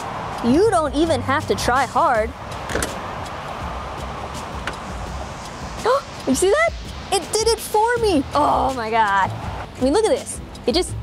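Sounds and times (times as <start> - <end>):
steady background hiss: 0.0 - 11.0
car trunk lid closing: 2.7 - 3.0
latch click: 2.7 - 3.0.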